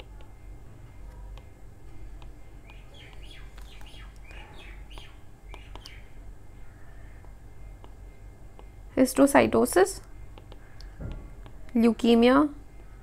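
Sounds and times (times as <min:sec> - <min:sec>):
birds chirping: 0:00.0 - 0:13.0
faint scattered clicks: 0:02.2 - 0:06.0, 0:10.0 - 0:11.8.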